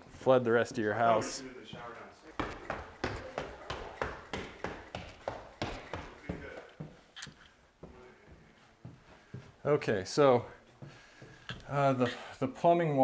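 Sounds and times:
footsteps hurrying up stairs: 1.2s - 7.1s, 7.8s - 9.6s, 10.8s - 11.8s.

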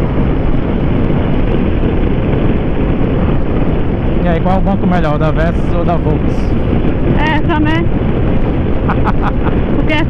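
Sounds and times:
motorcycle engine cruising: 0.0s - 10.0s
wind rush on microphone: 0.0s - 10.0s.

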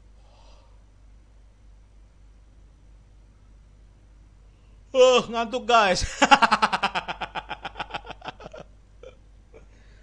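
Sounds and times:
man laughing hard: 6.0s - 9.2s.

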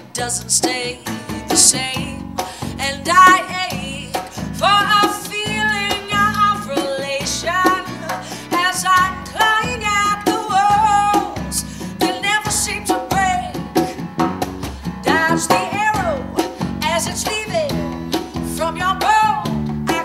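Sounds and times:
woman singing: 0.0s - 14.1s, 14.8s - 20.0s
bass guitar: 0.0s - 20.0s
djembe and snare percussion: 12.9s - 20.0s.

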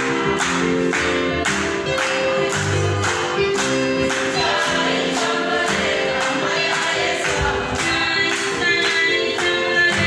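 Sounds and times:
choir singing gospel music: 0.0s - 10.0s.

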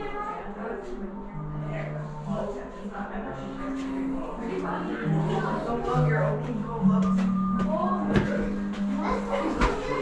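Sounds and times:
music with long held low notes: 0.0s - 10.0s.

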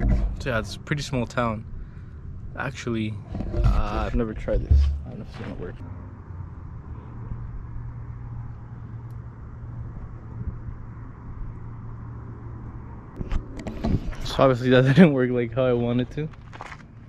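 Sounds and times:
low outdoor background rumble: 0.0s - 17.0s.

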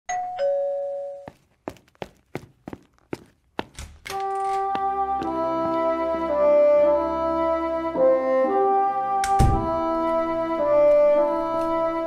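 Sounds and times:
two-tone doorbell chime: 0.1s - 1.4s.

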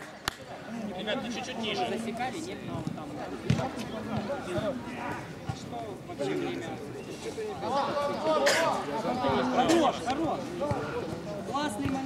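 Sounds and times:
football players calling out: 2.8s - 12.0s.

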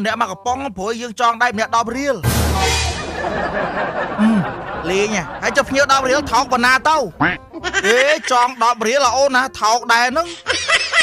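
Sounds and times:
man talking: 0.0s - 2.2s, 4.3s - 10.4s.

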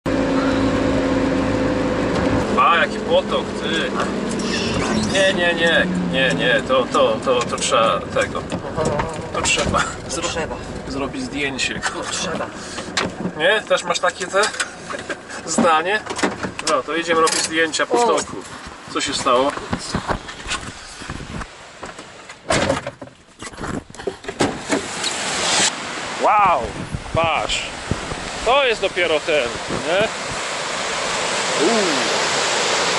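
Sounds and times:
engine hum inside vehicle: 0.1s - 15.4s
tyres hissing on wet road: 12.4s - 13.0s, 24.6s - 26.4s, 27.5s - 32.9s
rush of noise: 24.6s - 32.9s.

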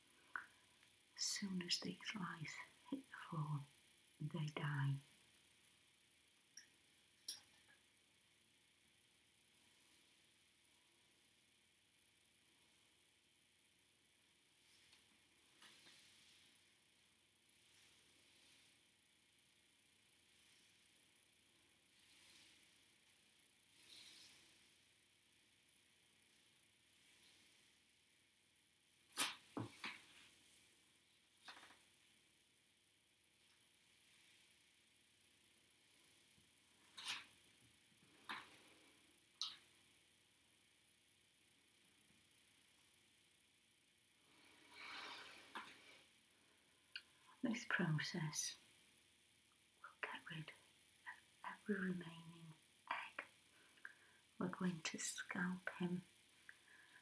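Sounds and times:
soft rustle: 9.4s - 11.4s, 14.2s - 39.9s.

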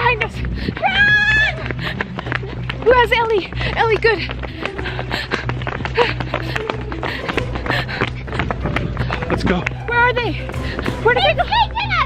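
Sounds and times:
scuffling running footsteps: 0.0s - 12.0s.

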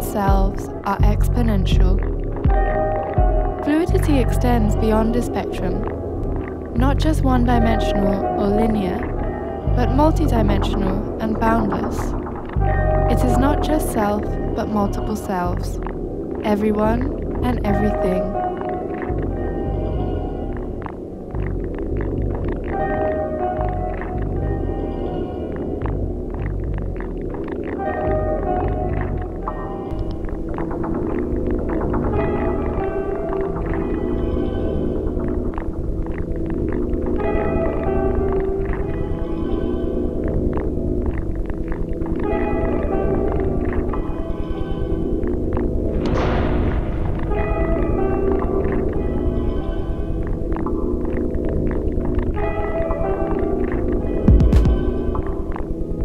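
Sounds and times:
sub-bass rumble: 0.3s - 7.8s, 12.0s - 14.5s
held synth tones: 52.3s - 55.7s
glitchy clicks: 53.6s - 55.7s.

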